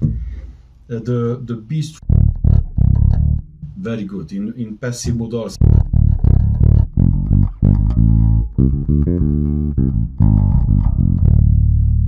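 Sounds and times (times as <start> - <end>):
electric bass plucked notes: 1.9 - 12.0.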